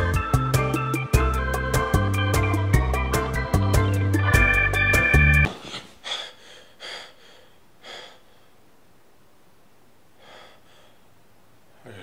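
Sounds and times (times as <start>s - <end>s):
man gasping for breath: 5.5s - 8.5s, 10.2s - 11.0s.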